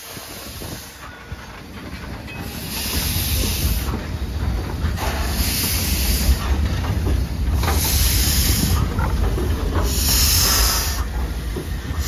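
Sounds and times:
steam locomotive hissing steam: 0:00.0 - 0:12.0
wind rumble on microphone: 0:00.0 - 0:12.0.

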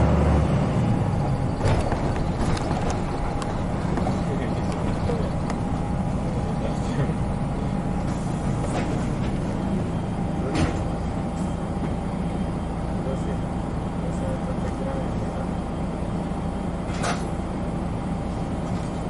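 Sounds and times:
bus diesel engine idling: 0:00.0 - 0:19.0.

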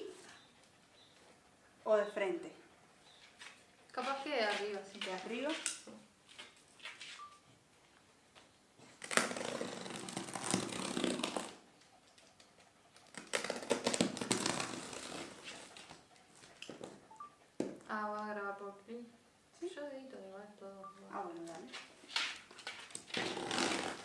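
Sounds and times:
hands scratching cardboard box: 0:13.1 - 0:16.0.

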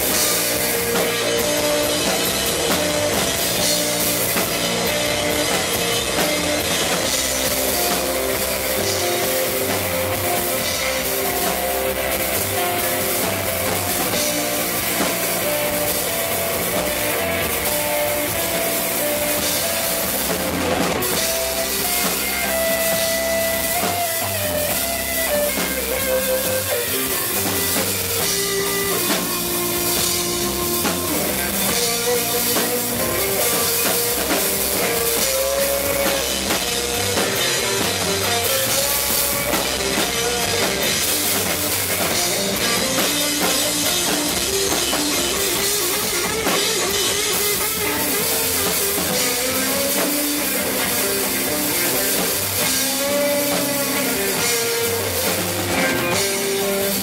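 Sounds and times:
electric guitar sustained melody: 0:00.0 - 0:57.0
live rock band playing: 0:00.0 - 0:57.0.

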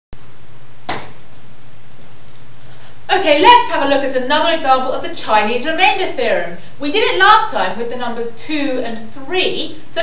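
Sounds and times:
sharp click: 0:00.9 - 0:01.3.

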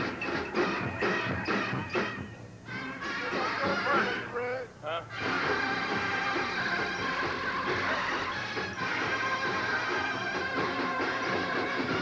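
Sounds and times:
marching band playing chords: 0:00.0 - 0:12.0.

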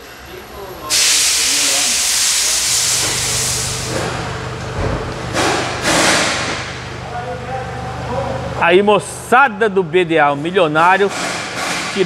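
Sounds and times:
steady low hum: 0:00.0 - 0:10.5
pressurised spray hissing: 0:00.9 - 0:04.2.

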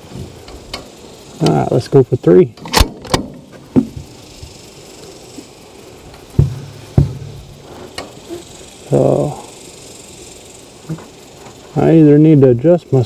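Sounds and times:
sharp crack: 0:02.5 - 0:11.6.

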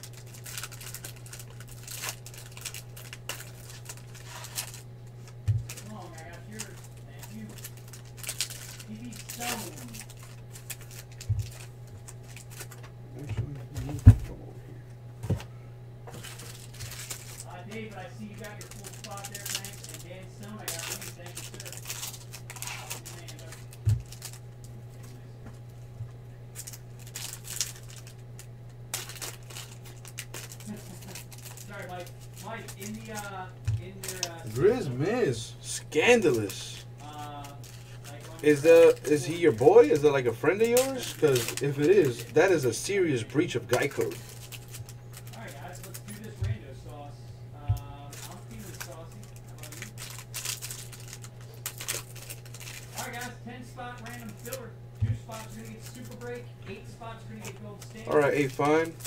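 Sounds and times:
wrapper crinkling and tearing: 0:00.0 - 0:12.9, 0:16.1 - 0:24.5, 0:26.5 - 0:46.4, 0:48.0 - 0:56.4, 0:57.1 - 0:59.0
steady low hum: 0:00.0 - 0:59.0.

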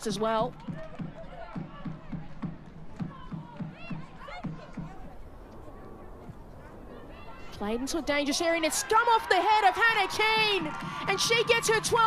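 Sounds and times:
steady low drumbeat: 0:00.2 - 0:05.2, 0:10.0 - 0:12.0
faint voices and shouts: 0:00.6 - 0:12.0.

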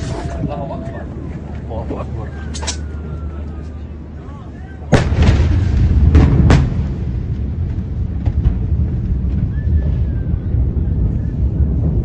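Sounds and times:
deep explosion rumble: 0:04.8 - 0:12.0
explosion blast crack: 0:04.9 - 0:12.0.

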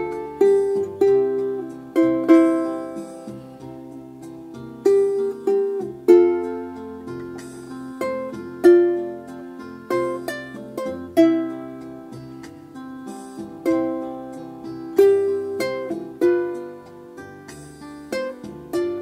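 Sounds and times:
solo ukulele: 0:00.0 - 0:19.0.

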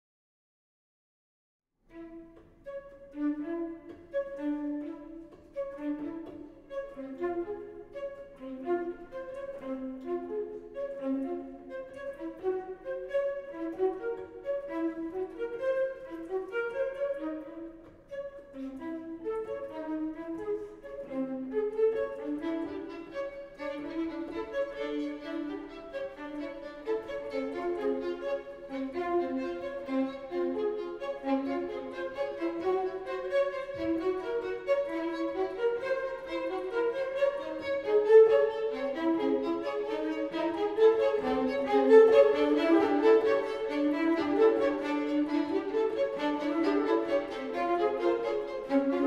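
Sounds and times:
fast chamber music: 0:01.9 - 0:49.0.

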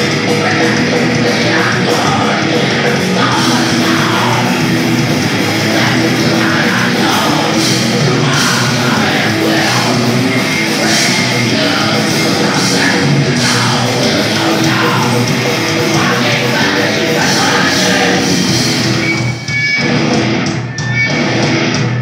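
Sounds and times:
vocalist singing into a microphone: 0:00.0 - 0:19.0
bass guitar: 0:00.0 - 0:22.0
distorted electric guitars: 0:00.0 - 0:22.0
drums: 0:00.0 - 0:22.0.

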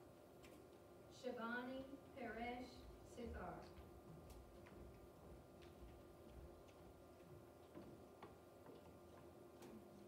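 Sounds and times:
faint steady hum: 0:00.0 - 0:10.0
faint irregular clicks: 0:00.4 - 0:00.8, 0:03.6 - 0:10.0.

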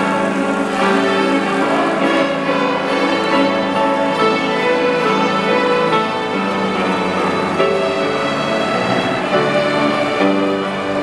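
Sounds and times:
string orchestra playing: 0:00.0 - 0:11.0.

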